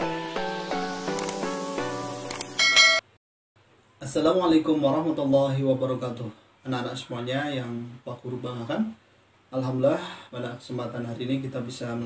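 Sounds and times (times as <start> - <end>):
bell-like chiming jingle: 2.6 - 3.0.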